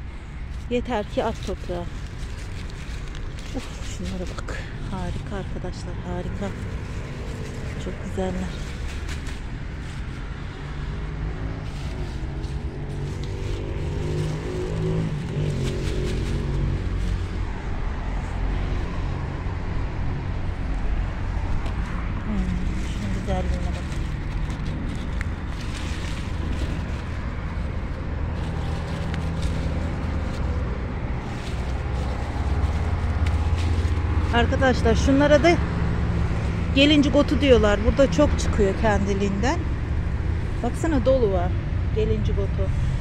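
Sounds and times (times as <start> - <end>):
low outdoor rumble: 0.0 - 43.0
hand rustling lettuce leaves: 0.2 - 19.0, 20.5 - 37.4.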